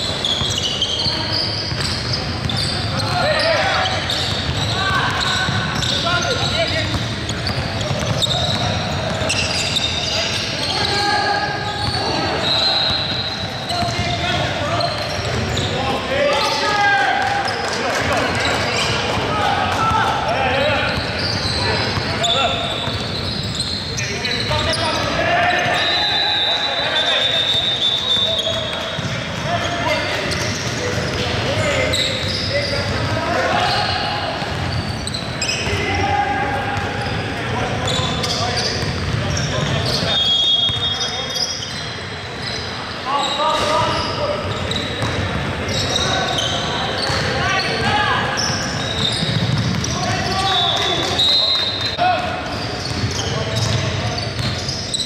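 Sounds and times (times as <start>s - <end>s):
shoe squeaks: 0.0s - 16.8s, 20.6s - 55.0s
players calling out: 0.0s - 55.0s.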